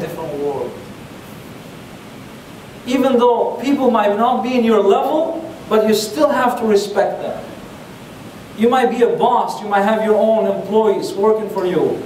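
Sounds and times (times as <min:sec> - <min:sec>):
man talking: 0:00.0 - 0:00.8, 0:02.9 - 0:07.6, 0:08.6 - 0:12.0
steady background hiss: 0:00.0 - 0:12.0.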